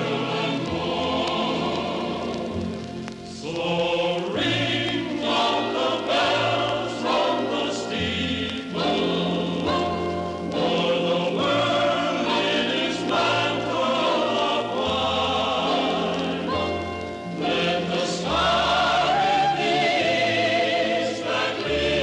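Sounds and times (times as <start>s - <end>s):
choir singing sustained chords: 0.0s - 22.0s.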